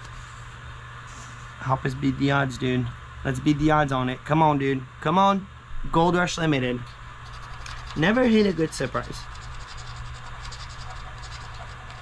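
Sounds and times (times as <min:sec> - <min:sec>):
plastic chip scraping ticket: 0:07.3 - 0:12.0.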